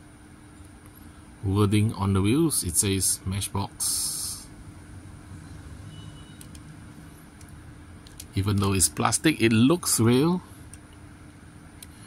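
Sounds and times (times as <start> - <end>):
faint constant hum: 0.0 - 12.0
low background rumble: 0.0 - 12.0.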